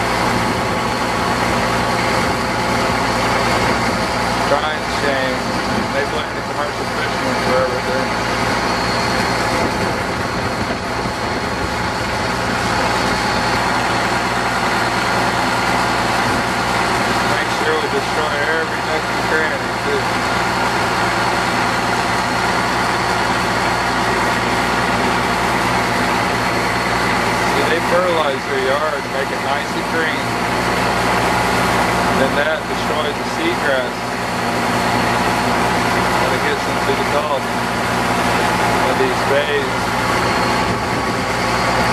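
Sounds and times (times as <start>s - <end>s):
boat motor running: 0.0s - 41.9s
water noise: 0.0s - 41.9s
wind: 0.0s - 41.9s.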